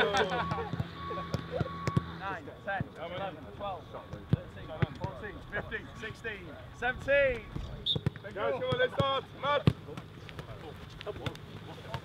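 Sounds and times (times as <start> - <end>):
footballs being kicked: 0.5 - 2.2, 7.4 - 12.0
men counting aloud: 8.2 - 9.9.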